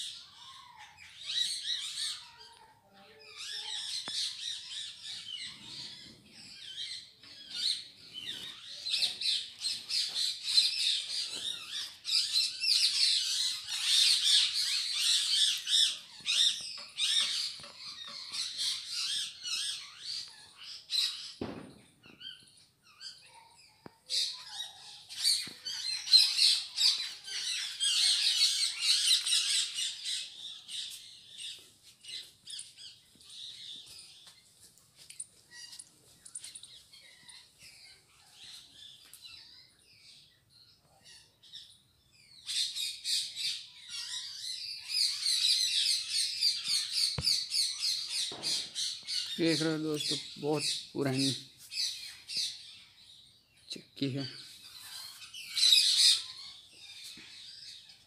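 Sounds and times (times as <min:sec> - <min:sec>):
small birds chirping and squawking: 0:00.0 - 0:58.0.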